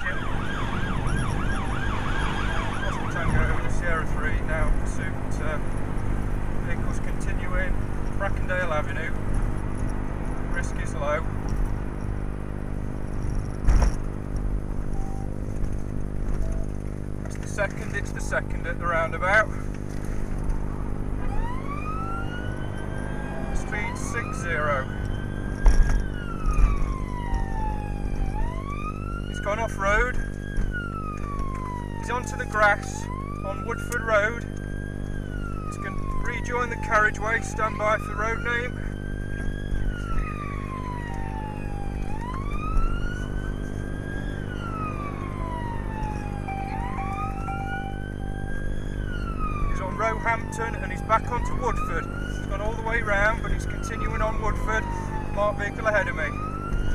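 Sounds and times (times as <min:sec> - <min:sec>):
engine and road noise: 0:00.0 - 0:56.9
police siren wailing: 0:00.0 - 0:56.9.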